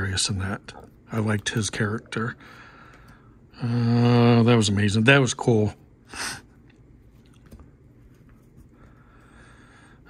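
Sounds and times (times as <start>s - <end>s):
cards set down softly: 7.1s - 8.8s.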